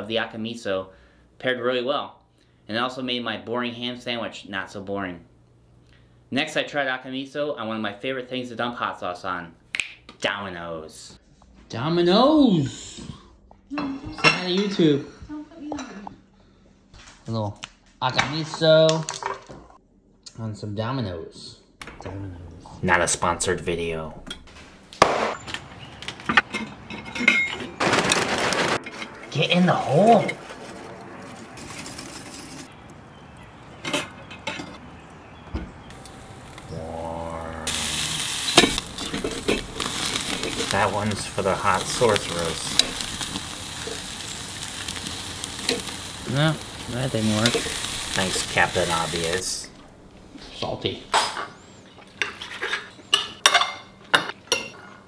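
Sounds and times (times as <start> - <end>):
charcoal tumbling into grill: 27.2 - 29.2, 37.7 - 49.6.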